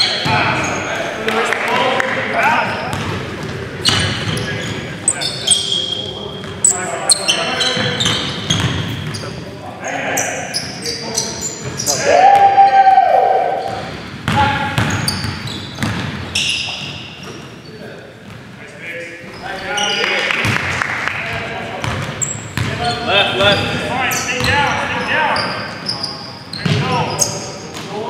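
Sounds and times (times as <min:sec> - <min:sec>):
sneakers squeaking on wooden floor: 0:00.0 - 0:01.1, 0:02.6 - 0:12.5, 0:13.6 - 0:18.6, 0:19.2 - 0:20.6, 0:21.4 - 0:28.0
players' voices: 0:00.0 - 0:15.5, 0:16.4 - 0:28.0
basketball bouncing: 0:02.9 - 0:04.4, 0:13.7 - 0:17.5, 0:21.8 - 0:22.8.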